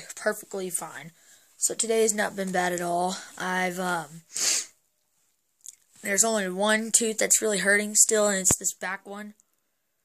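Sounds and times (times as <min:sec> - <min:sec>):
sharp hissing breath: 0:04.3 - 0:04.8.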